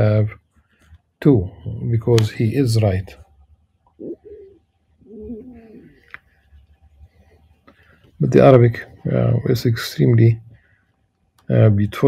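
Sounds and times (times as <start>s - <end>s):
pigeon cooing: 4.0s - 6.2s.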